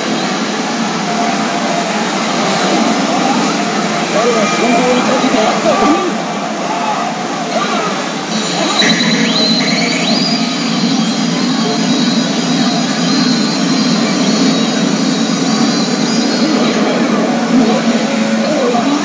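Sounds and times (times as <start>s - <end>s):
pachinko parlour din: 0.8s - 19.0s
pachinko machine sound effects and music: 7.6s - 19.0s
rising electronic tones: 8.2s - 19.0s.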